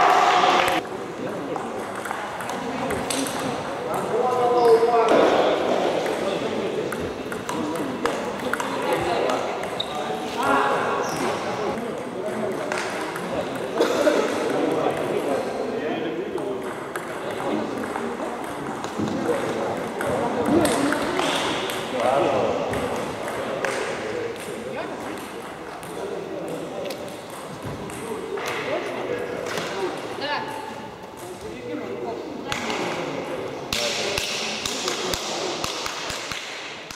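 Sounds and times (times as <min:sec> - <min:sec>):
people talking: 0:00.0 - 0:36.3.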